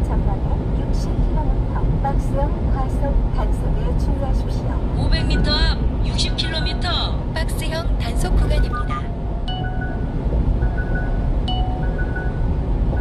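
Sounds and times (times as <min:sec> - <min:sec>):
truck road and engine rumble: 0:00.0 - 0:13.0
music playing: 0:08.4 - 0:13.0.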